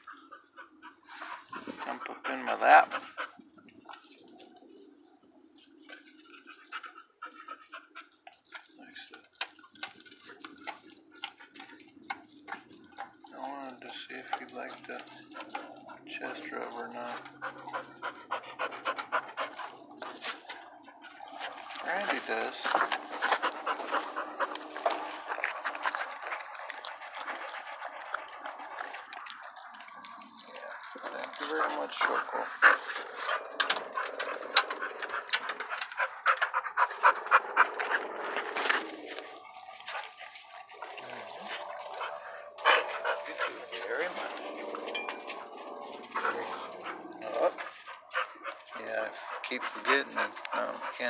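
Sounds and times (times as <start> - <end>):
dog panting: 0.0 - 5.0, 5.6 - 51.0.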